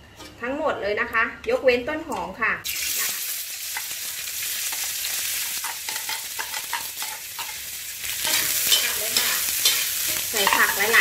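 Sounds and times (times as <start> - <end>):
vegetables sizzling in oil: 2.6 - 11.0
spatula scraping pan: 5.6 - 11.0.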